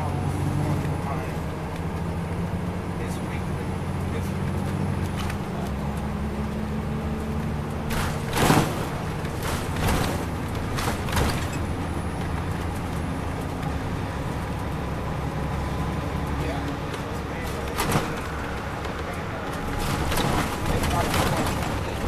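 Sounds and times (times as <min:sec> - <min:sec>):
bus engine low rumble: 0:00.0 - 0:22.0
road and tyre noise: 0:00.0 - 0:22.0.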